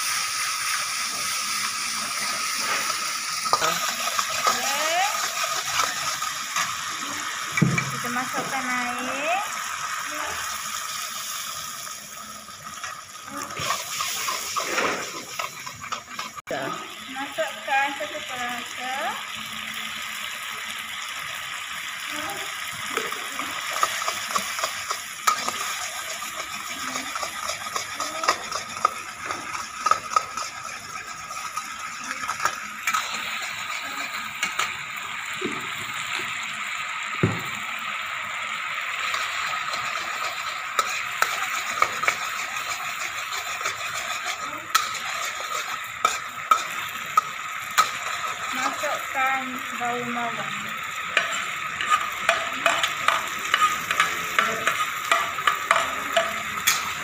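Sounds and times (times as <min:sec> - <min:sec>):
sauce sizzling in a wok: 0:00.0 - 0:57.0
metal spatula scraping a wok: 0:01.1 - 0:06.9, 0:12.8 - 0:16.4, 0:23.6 - 0:34.7, 0:39.0 - 0:49.0, 0:51.2 - 0:57.0.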